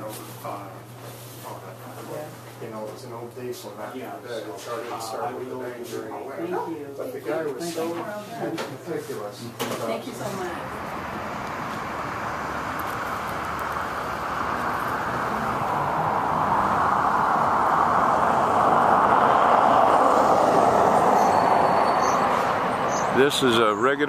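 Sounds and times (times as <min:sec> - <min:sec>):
passing vehicle road noise: 0:09.8 - 0:24.0.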